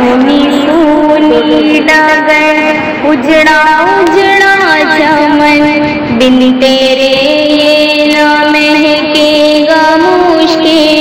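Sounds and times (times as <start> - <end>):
high voice singing: 0.0 - 11.0.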